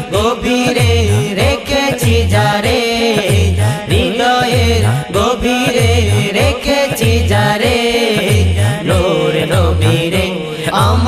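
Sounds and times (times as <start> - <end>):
voices singing devotional chant: 0.0 - 11.0.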